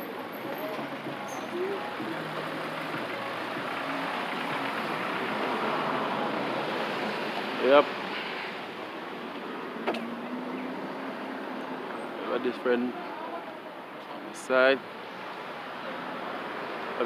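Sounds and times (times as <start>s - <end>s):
tyres hissing on wet road: 2.2s - 9.1s.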